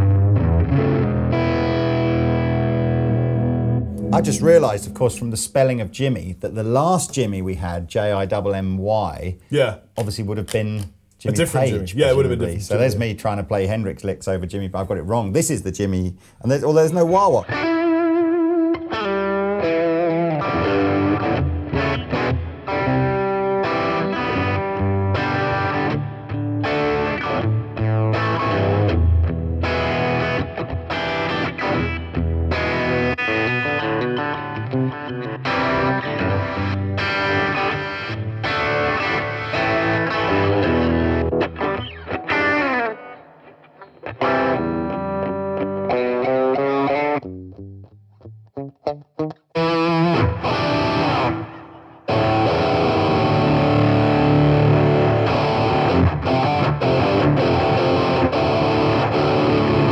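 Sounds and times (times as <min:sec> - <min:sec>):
electric guitar playing: 0:00.0 - 0:06.4, 0:17.0 - 0:59.9.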